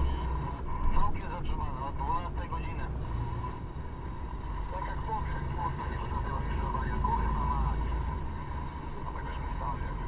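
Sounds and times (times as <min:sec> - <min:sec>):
vehicle engine and tyre rumble: 0:00.0 - 0:10.0.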